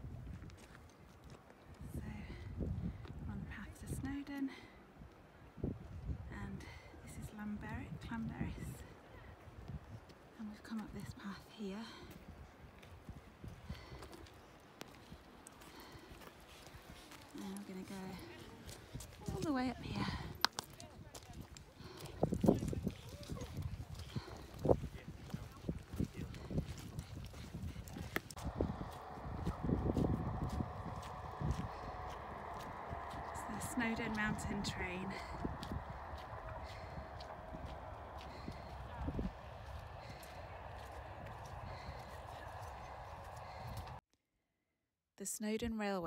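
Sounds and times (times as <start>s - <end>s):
wind buffeting microphone: 0.0s - 10.1s, 12.0s - 44.0s
indistinct voices: 28.0s - 44.0s.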